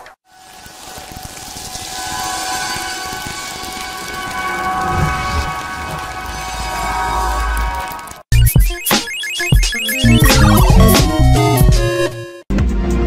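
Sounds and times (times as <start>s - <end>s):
rain-like hiss: 0.3s - 8.2s
deep low rumble: 4.8s - 7.9s
held synth tones: 8.7s - 11.7s.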